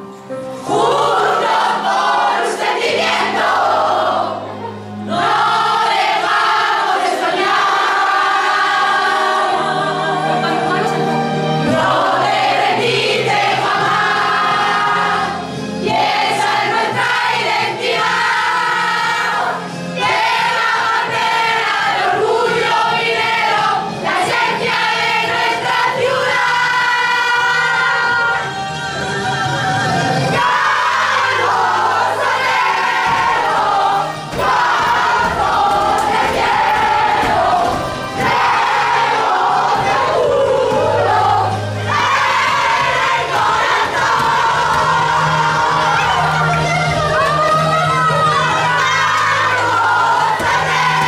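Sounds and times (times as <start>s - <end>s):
women singing in unison: 0.6s - 51.0s.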